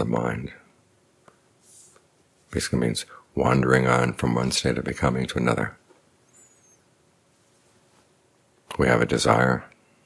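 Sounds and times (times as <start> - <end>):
faint high chirp: 6.2 - 6.9.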